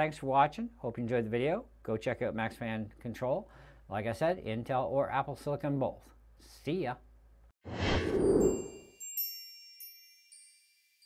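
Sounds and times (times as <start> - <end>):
whoosh: 7.6 - 8.9
high chime tones: 8.1 - 10.4.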